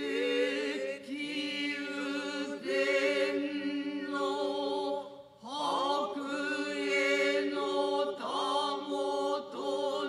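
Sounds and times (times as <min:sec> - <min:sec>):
chorus chanting in unison: 0:00.0 - 0:10.0.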